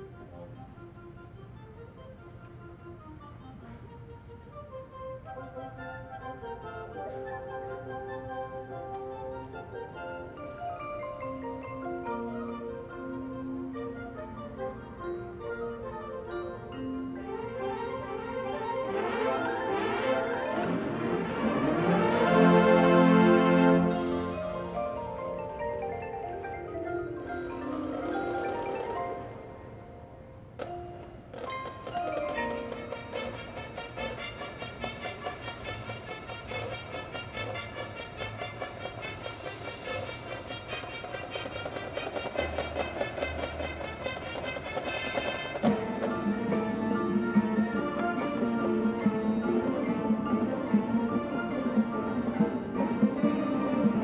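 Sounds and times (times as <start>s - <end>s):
marching band playing: 0.2s - 29.8s, 30.6s - 54.0s
quick struck percussion notes: 31.3s - 54.0s.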